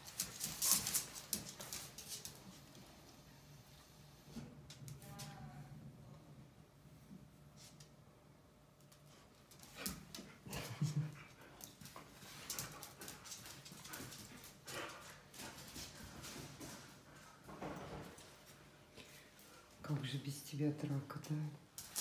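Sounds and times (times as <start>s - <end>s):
paws scuffling on tile floor: 0.0s - 3.0s, 8.9s - 19.6s, 21.2s - 22.0s.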